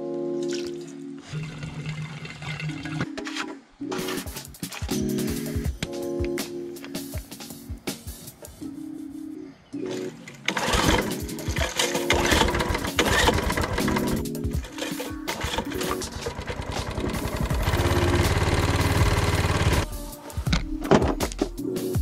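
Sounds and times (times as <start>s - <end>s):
background music: 0.0s - 22.0s
lawn mower engine running: 9.9s - 19.8s.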